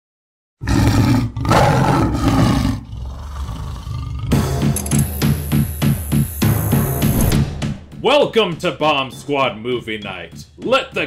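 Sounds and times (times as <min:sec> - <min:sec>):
tiger roaring: 0:00.6 - 0:04.4.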